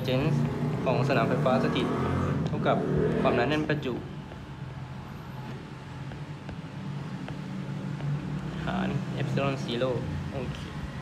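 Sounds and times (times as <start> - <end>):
stylus tapping on tablet screen: 4.2 - 4.6, 6.0 - 8.2.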